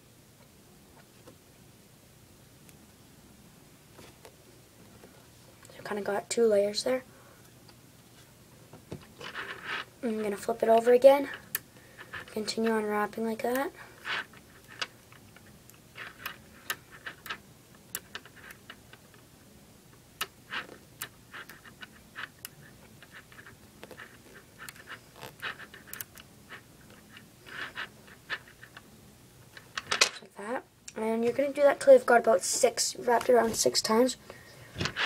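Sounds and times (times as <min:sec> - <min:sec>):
magnet balls clicking together: 0:13.6 - 0:19.2, 0:20.2 - 0:28.9.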